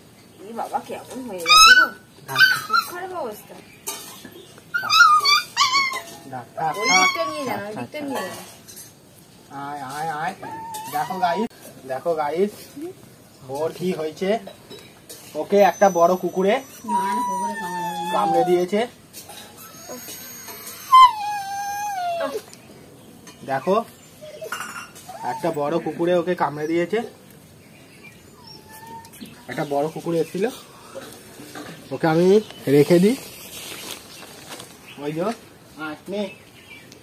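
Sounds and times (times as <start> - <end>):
puppy whining cries: 1.4 - 3.1, 4.7 - 7.8, 10.2 - 11.5, 15.4 - 22.6, 23.5 - 27.0, 28.2 - 29.6.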